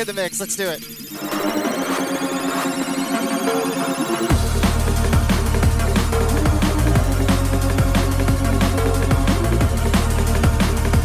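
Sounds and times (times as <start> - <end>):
steady synth tones: 0.8 - 11.0
high rising synth sweep: 1.0 - 11.0.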